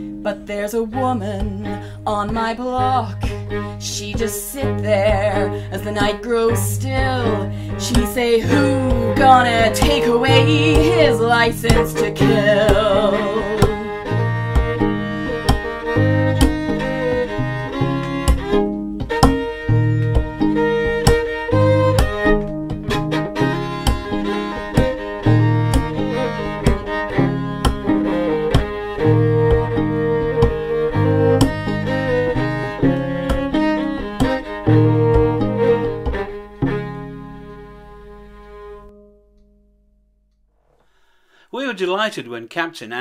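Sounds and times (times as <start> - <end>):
bowed fiddle: 0.0 - 39.2
plucked fiddle: 0.0 - 39.6
body percussion taps on chest: 14.5 - 28.8.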